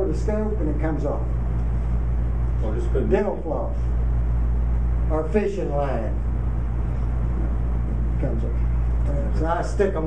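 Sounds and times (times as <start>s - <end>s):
low hum and rumble of room: 0.0s - 10.0s.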